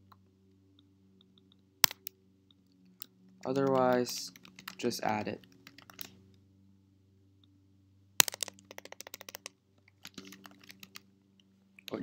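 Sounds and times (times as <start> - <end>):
typing on computer keyboard: 3.4 - 6.1, 8.2 - 11.0.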